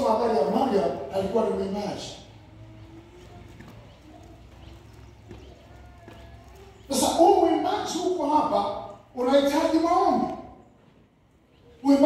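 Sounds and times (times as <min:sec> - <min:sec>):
faint footsteps on stage: 0:02.8 - 0:07.0.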